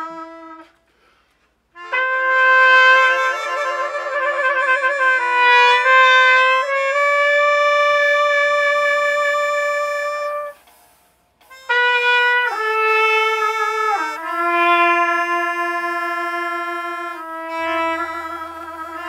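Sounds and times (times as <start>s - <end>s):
trumpet and melodica melody: 0.0s - 0.7s, 1.8s - 10.6s, 11.4s - 19.0s.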